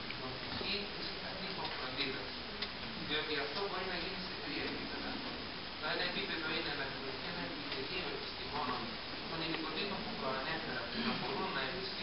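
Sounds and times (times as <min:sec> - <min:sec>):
man speaking into microphone: 0:00.1 - 0:02.4, 0:03.0 - 0:12.0.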